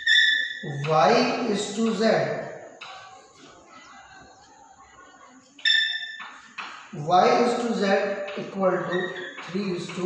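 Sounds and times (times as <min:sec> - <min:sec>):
chalk squeaking on blackboard: 0:00.0 - 0:02.0, 0:05.6 - 0:10.0.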